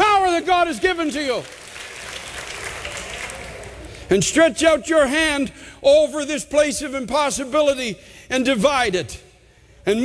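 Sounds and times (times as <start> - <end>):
congregation applauding: 0.2 - 4.1.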